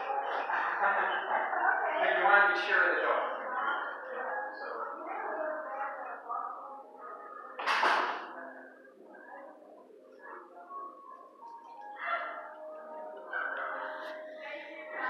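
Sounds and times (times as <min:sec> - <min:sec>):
music playing: 0:00.0 - 0:15.0.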